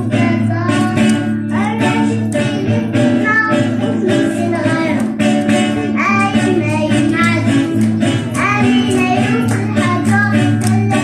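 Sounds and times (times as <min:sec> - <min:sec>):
acoustic guitars strummed: 0:00.0 - 0:11.0
children singing into microphones: 0:00.0 - 0:11.0.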